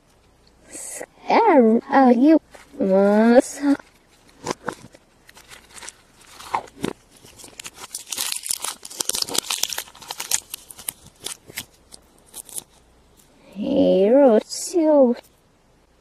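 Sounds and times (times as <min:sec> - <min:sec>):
plastic wrapping crinkling and tearing: 0:02.6 - 0:13.3.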